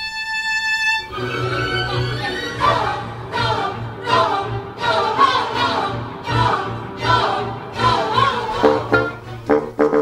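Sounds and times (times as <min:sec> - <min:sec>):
orchestral music: 0:00.6 - 0:10.0
choir singing: 0:01.1 - 0:09.4.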